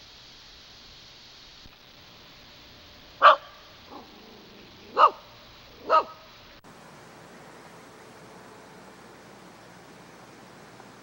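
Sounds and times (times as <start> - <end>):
dog barking: 3.2 - 4.2, 4.8 - 6.3
faint short bark: 3.2 - 4.3, 4.9 - 6.3.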